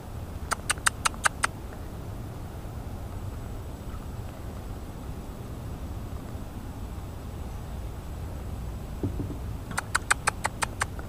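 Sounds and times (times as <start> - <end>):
animal high chirps: 0.5 - 1.5, 9.7 - 11.0
steady low rumble: 1.4 - 9.9.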